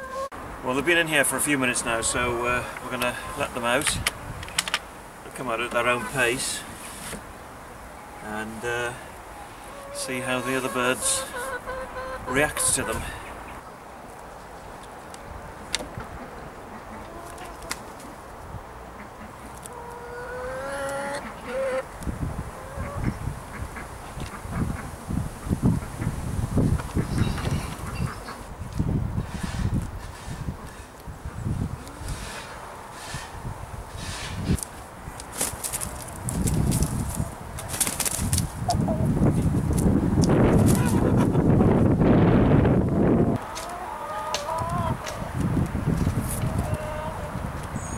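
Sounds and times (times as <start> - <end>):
hens calling: 0.0 - 0.3, 1.9 - 3.8, 5.4 - 6.7, 7.9 - 13.6, 16.1 - 18.1, 19.0 - 21.9, 22.5 - 25.0, 40.5 - 41.4, 42.9 - 45.4, 46.2 - 47.4.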